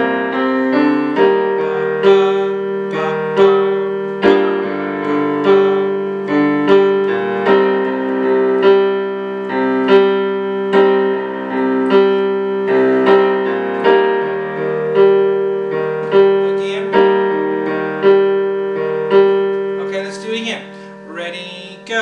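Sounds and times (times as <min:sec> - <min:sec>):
piano playing slow chords: 0:00.0 - 0:22.0.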